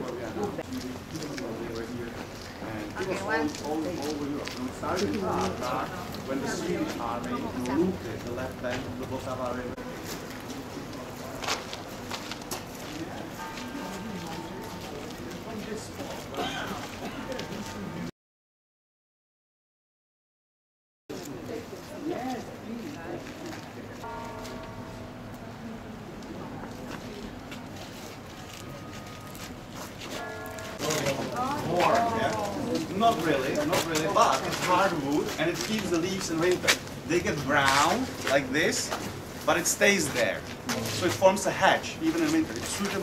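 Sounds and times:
footsteps on a path: 0:00.0 - 0:08.9, 0:10.0 - 0:18.0, 0:26.3 - 0:43.0.

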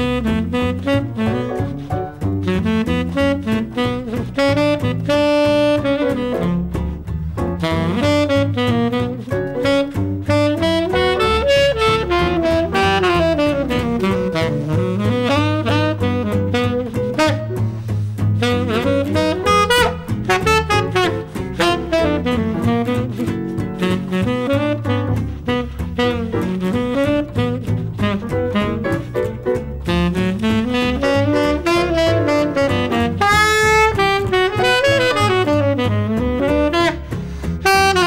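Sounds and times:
bass line: 0:00.0 - 0:38.0
saxophone solo: 0:00.0 - 0:38.0.

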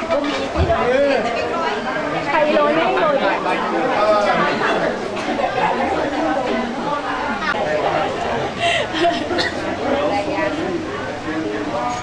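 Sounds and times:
overlapping conversational chatter: 0:00.0 - 0:12.0.

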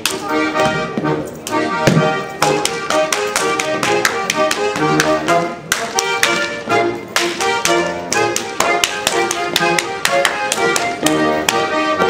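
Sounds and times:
hands slapping thighs and shoes: 0:00.0 - 0:11.7
folk dance music with fiddle: 0:00.0 - 0:12.0.

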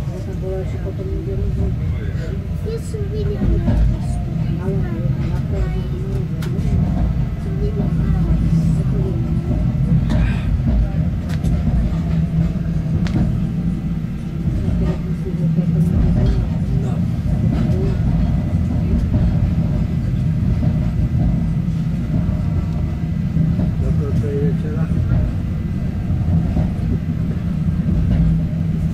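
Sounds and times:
railcar rumble: 0:00.0 - 0:28.9.

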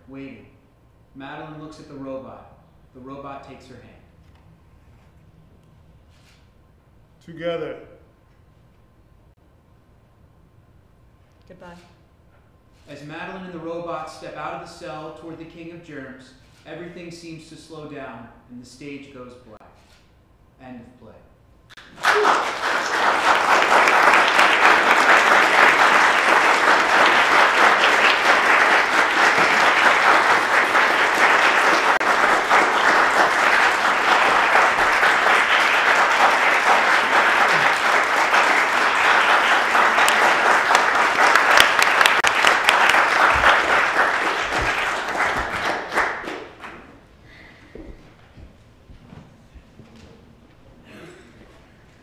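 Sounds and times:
audience applauding: 0:21.8 - 0:47.0.

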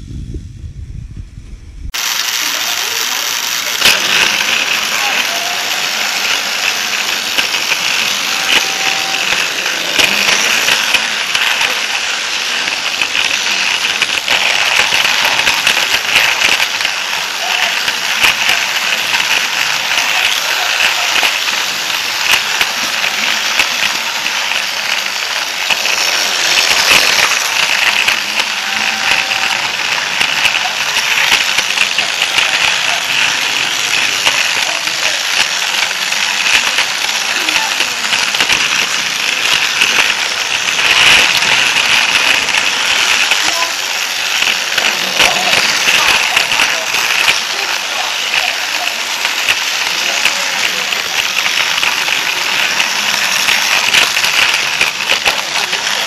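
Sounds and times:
toy train motor whirring and rattling: 0:01.9 - 0:56.0.

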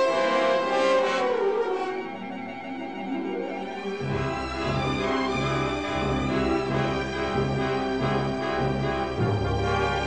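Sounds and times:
held brass and string chords: 0:00.0 - 0:10.0.

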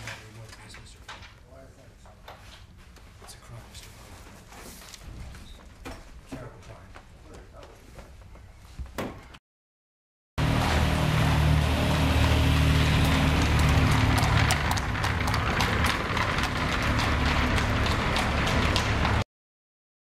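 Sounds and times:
horses galloping on cobblestones: 0:12.0 - 0:19.2
carriage wheels rattling: 0:13.0 - 0:19.2.

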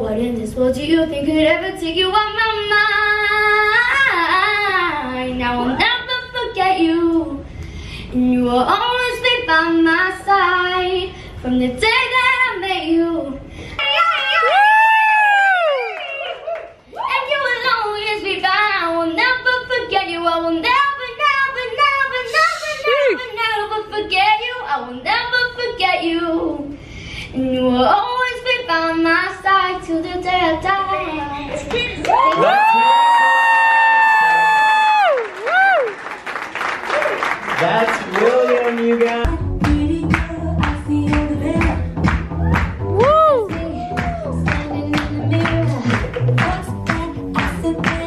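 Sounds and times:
boy singing into a microphone: 0:00.0 - 0:14.2, 0:17.2 - 0:31.4
audience applause and cheering: 0:13.8 - 0:17.1, 0:31.7 - 0:39.3, 0:41.6 - 0:48.0
backing track with bass beat: 0:39.2 - 0:48.0.

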